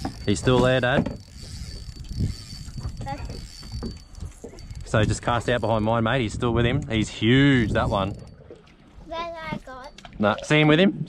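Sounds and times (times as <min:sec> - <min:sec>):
fishing reel being cranked: 0:00.0 - 0:08.4.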